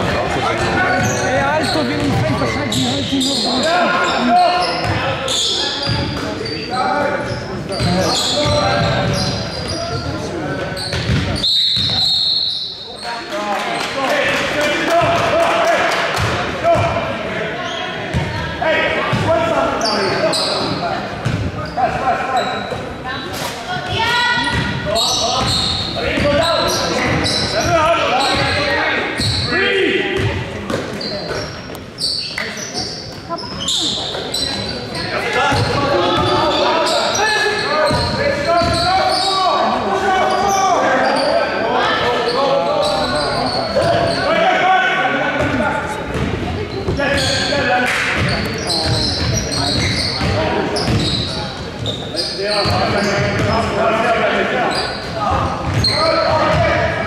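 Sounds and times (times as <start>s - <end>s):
basketball bouncing on court: 0.0s - 3.1s, 10.8s - 12.0s, 18.1s - 18.4s, 21.2s - 21.5s, 24.5s - 24.8s, 30.2s - 31.5s, 45.4s - 47.5s, 48.1s - 52.0s, 52.6s - 53.6s, 55.3s - 56.9s.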